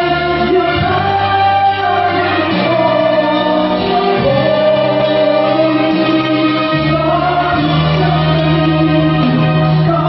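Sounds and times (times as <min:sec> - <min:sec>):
concert band playing sustained chords: 0:00.0 - 0:10.0.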